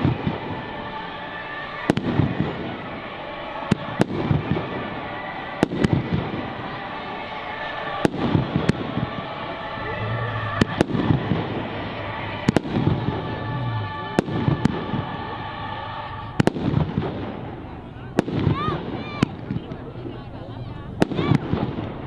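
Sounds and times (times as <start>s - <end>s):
fireworks bursting with bangs: 0.0s - 0.9s, 1.8s - 7.2s, 7.8s - 19.9s, 21.0s - 22.0s
rising firework whistles: 7.8s - 17.5s.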